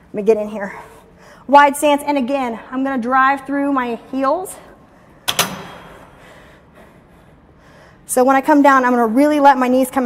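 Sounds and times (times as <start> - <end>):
leg press machine metallic clunk: 5.2 - 6.3.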